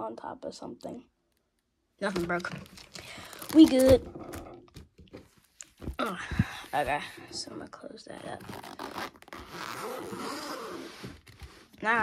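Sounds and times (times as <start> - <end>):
zipper being zipped: 8.4 - 11.7.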